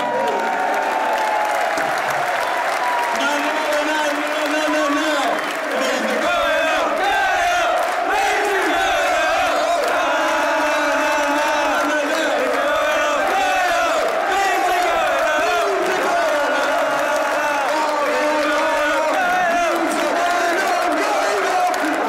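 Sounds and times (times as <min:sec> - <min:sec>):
stadium crowd chanting and cheering: 0:00.0 - 0:22.0.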